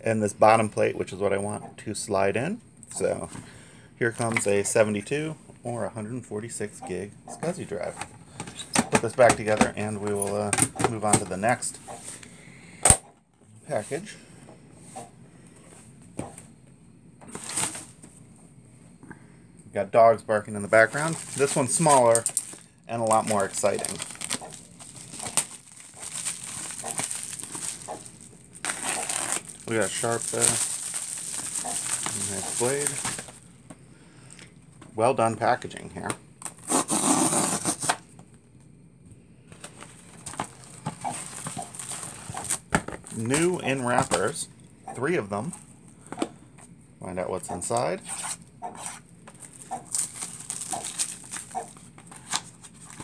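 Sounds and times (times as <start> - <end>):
handling rustle: 20.7 - 33.4, 39.5 - 44.4, 48.1 - 53.0.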